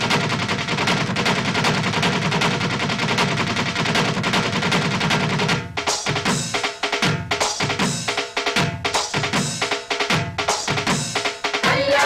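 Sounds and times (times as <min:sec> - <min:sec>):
fast dense drumming: 0:00.0 - 0:12.0.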